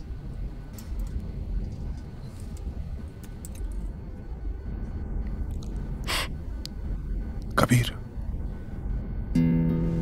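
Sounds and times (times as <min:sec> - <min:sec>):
aircraft cabin drone: 0:00.0 - 0:10.0.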